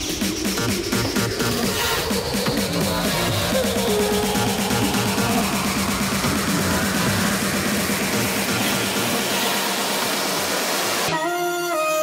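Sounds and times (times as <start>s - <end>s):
loud hissing noise effect: 0.0s - 11.1s
electronic dance music: 0.0s - 12.0s.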